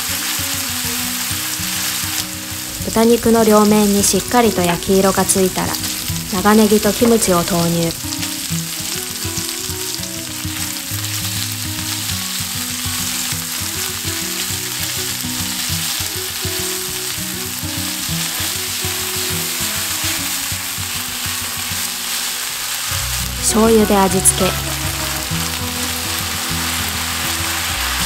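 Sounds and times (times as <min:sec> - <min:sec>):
food sizzling in a frying pan: 0:00.0 - 0:28.0.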